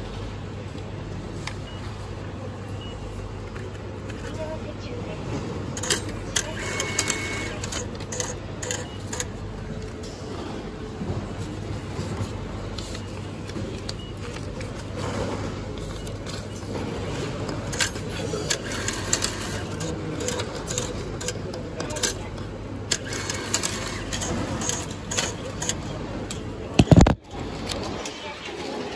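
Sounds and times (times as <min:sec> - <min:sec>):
steady background hum: 0:00.0 - 0:28.9
banknote acceptor whirring: 0:05.7 - 0:09.6, 0:12.9 - 0:27.1
sharp mechanical clicks: 0:17.7 - 0:27.2.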